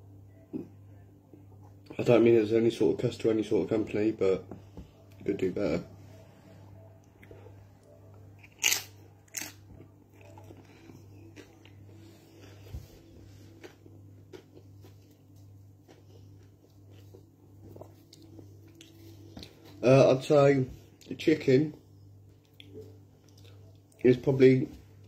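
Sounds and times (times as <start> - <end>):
man chewing food: 7.0 - 19.8, 22.2 - 24.1.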